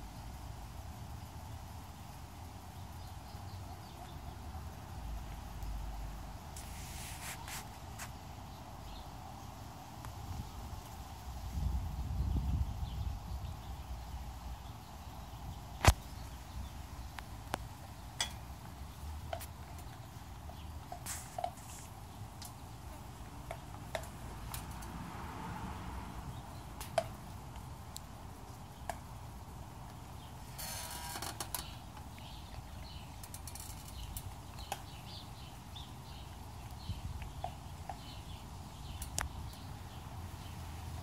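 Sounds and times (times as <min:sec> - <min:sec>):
brief rustle: 0:06.6 - 0:08.2, 0:21.0 - 0:21.9.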